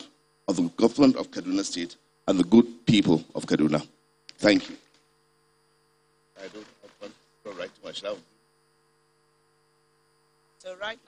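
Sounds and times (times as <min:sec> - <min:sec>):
electrical mains hum: 0:00.0 - 0:11.0
faint high whines: 0:00.0 - 0:11.0.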